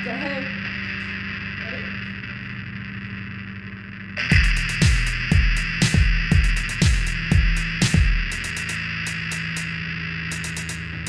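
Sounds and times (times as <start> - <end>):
amplifier hum and hiss: 0.0 - 11.0.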